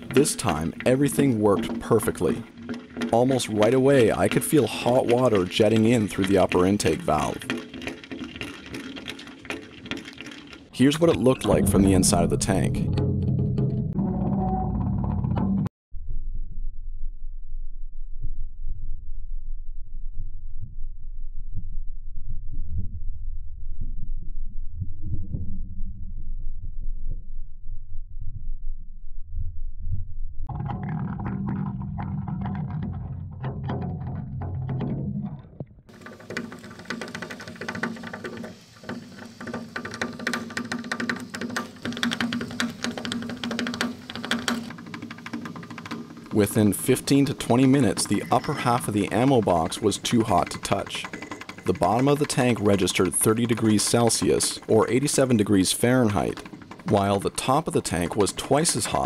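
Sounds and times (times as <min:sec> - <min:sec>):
hissing water with small clicks: 0:00.0 - 0:10.8, 0:35.9 - 0:57.5
muffled underwater rumbling and burbling: 0:10.8 - 0:15.7, 0:18.2 - 0:35.9.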